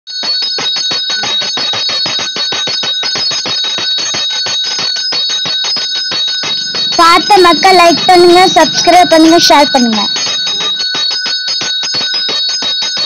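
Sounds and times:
brass hand bell rung rapidly: 0.1 - 13.0.

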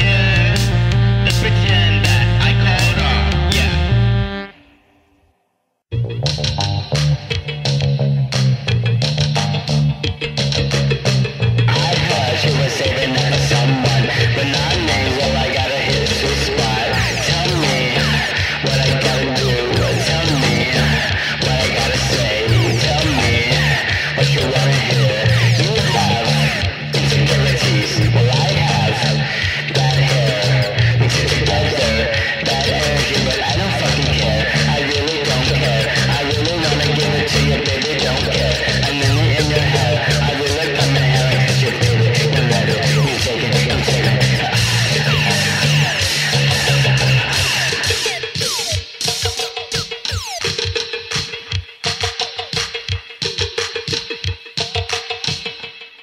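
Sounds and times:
bass guitar line: 0.0 - 4.6, 5.9 - 50.9
post-punk band playing: 0.0 - 4.7, 5.9 - 56.0
electric guitar: 0.0 - 4.9, 5.9 - 56.0
person singing: 0.0 - 5.0, 11.7 - 50.7.

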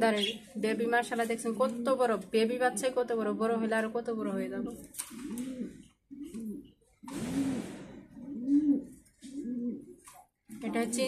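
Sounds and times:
pigeon cooing: 4.6 - 10.2.

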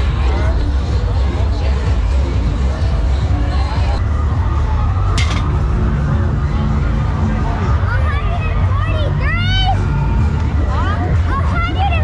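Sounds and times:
crowd babble: 0.0 - 12.0
fairground music with heavy bass: 0.0 - 12.0.

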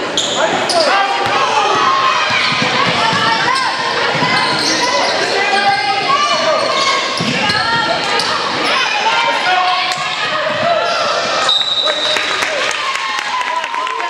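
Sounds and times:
indistinct voices: 0.3 - 12.0
referee whistle blast: 11.5 - 12.1.

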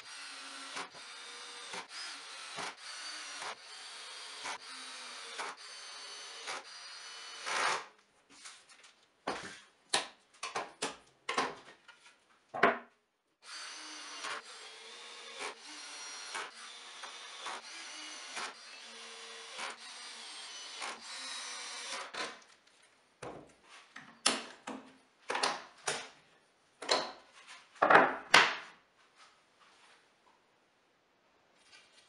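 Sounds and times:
cordless drill boring into plywood: 0.0 - 7.9, 13.4 - 22.2.

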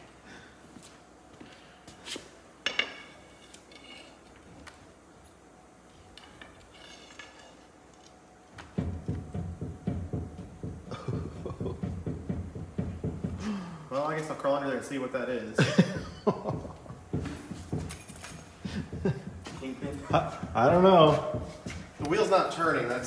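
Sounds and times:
wheel knocking and rattling: 8.6 - 13.4
light metallic clinks: 17.8 - 18.6.

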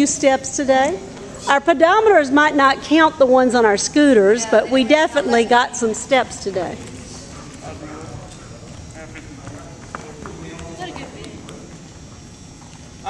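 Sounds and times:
murmur of distant voices: 0.0 - 12.2.

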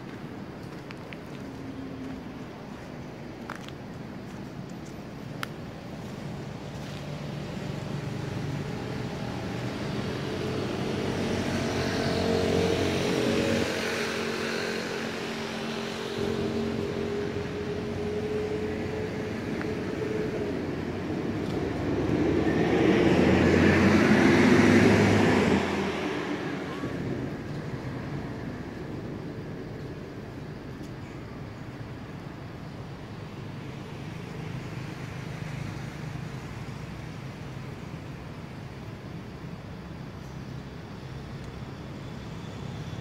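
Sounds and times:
vehicles passing: 0.0 - 43.0.

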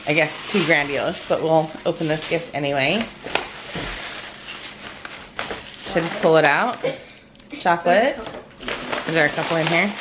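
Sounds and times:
paper crackle: 0.0 - 6.7, 8.5 - 10.0
tissue paper rustling and crinkling: 0.0 - 6.7, 8.6 - 10.0.

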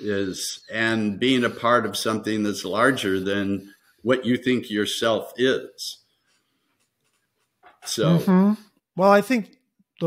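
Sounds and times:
man talking: 0.0 - 6.0, 7.8 - 8.3, 9.0 - 9.5.

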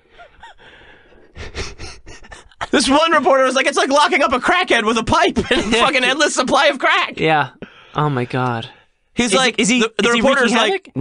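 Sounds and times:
breathy human laughter: 0.0 - 2.8.

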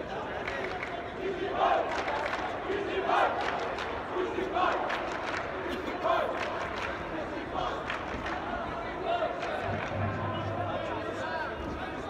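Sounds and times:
crowd cheering: 1.3 - 11.8.

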